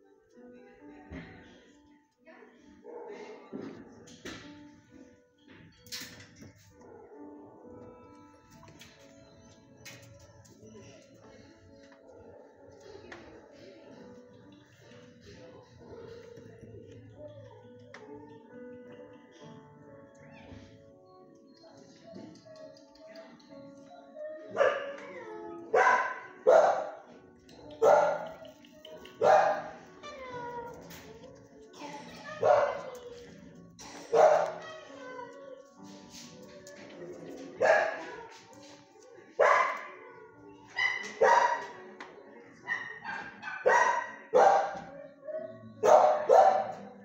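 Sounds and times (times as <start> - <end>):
dog barking: 24.5 - 25.1, 25.7 - 27.2, 27.8 - 28.5, 29.2 - 29.8, 32.3 - 33.0, 34.0 - 34.9, 37.5 - 38.3, 39.3 - 40.0, 40.7 - 41.8, 42.6 - 45.0, 45.8 - 47.0.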